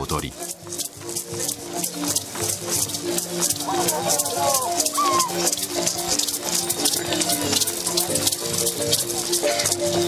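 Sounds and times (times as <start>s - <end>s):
shaken rattles clicking: 0.0s - 10.0s.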